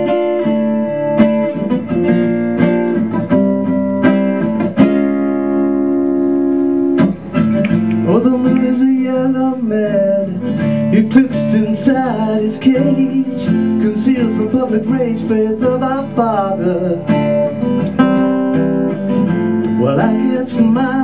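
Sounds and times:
guitar strumming chords: 0:00.0 - 0:21.0
person singing: 0:07.9 - 0:17.1.

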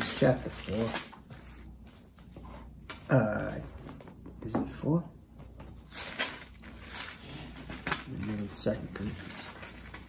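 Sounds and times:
paper pages rustling: 0:05.9 - 0:10.0.

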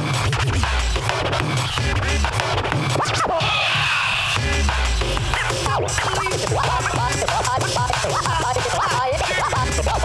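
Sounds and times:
hip-hop beat with heavy bass: 0:00.0 - 0:10.0
vinyl record scratching: 0:00.0 - 0:10.0.

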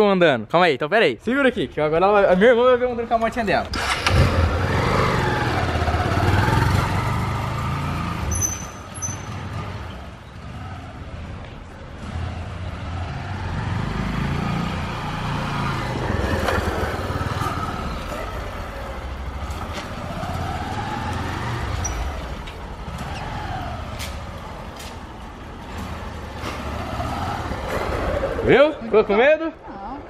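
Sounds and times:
motorcycle engine revving: 0:03.7 - 0:11.3, 0:11.9 - 0:28.8.

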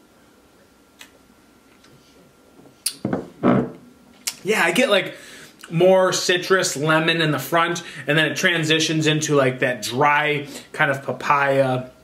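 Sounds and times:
lips smacking: 0:02.8 - 0:03.0, 0:04.2 - 0:04.4.

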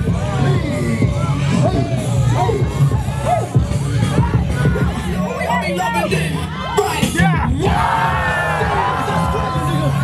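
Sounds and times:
crowd shouting and whooping: 0:00.0 - 0:10.0
dance music with bass beat: 0:00.0 - 0:10.0
loud yell: 0:05.8 - 0:10.0.

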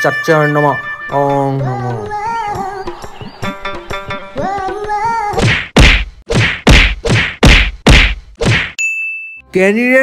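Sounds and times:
high bell-like ding: 0:08.8 - 0:09.5.

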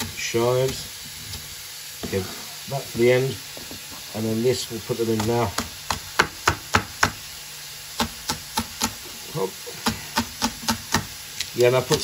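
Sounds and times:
knife chopping on cutting board: 0:05.1 - 0:07.2, 0:08.0 - 0:09.0, 0:09.8 - 0:11.1.

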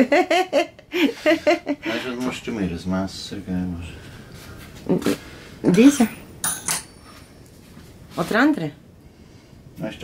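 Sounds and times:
metallic utensil clinks: 0:06.0 - 0:07.2.

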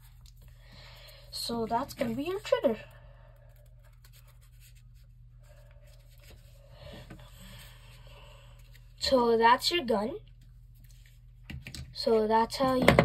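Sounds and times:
paper rustling: 0:03.5 - 0:06.6.

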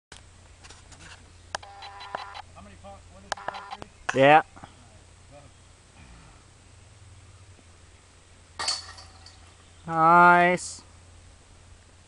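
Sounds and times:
disc hitting metal chains: 0:08.6 - 0:09.6.

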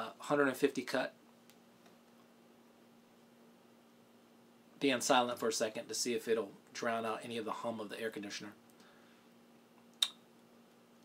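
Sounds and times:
air conditioner hum: 0:00.0 - 0:11.0.

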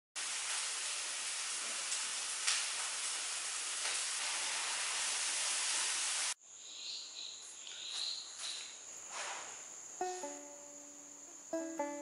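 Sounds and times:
food sizzling in pan: 0:00.2 - 0:06.4.

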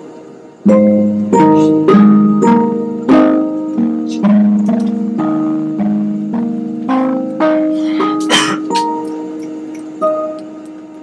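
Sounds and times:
piano chords: 0:00.0 - 0:11.0.

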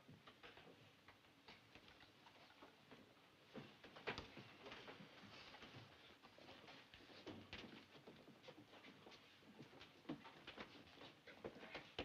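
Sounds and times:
people getting up and shuffling: 0:01.8 - 0:12.0.

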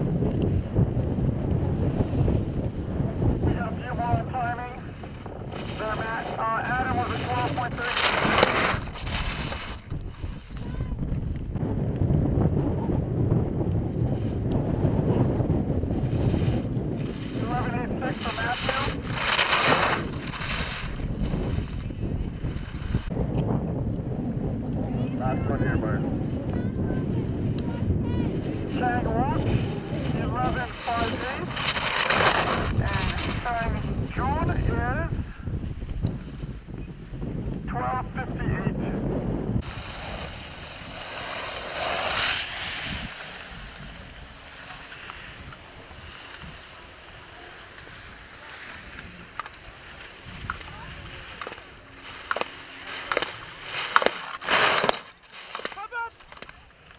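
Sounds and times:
wind buffeting microphone: 0:00.0 - 0:54.6
skis carving on snow: 0:00.7 - 0:10.9, 0:13.7 - 0:23.1, 0:26.0 - 0:36.7, 0:39.5 - 0:56.8.

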